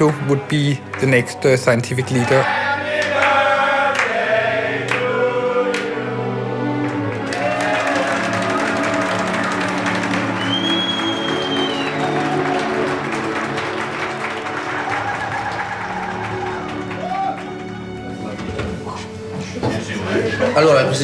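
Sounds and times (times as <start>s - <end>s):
group clapping: 0.7s - 18.4s
voices singing over music: 2.0s - 10.6s
high whistle-like tone: 10.4s - 12.1s.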